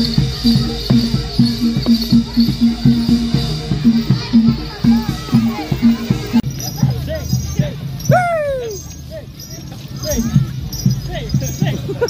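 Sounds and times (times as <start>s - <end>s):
hand drum strokes: 0.0s - 8.8s
short voices: 7.8s - 9.0s.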